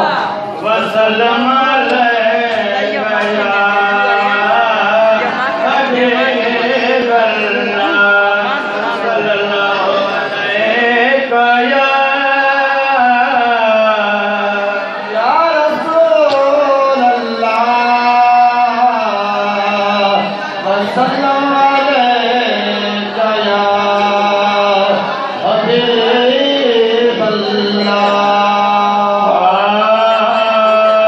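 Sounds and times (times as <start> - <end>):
man chanting into microphone: 0.0 - 31.0.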